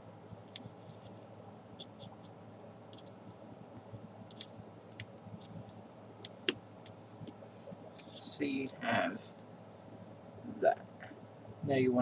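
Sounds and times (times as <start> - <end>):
low steady hum: 0.0 - 12.0
paper being folded and creased: 0.3 - 1.2.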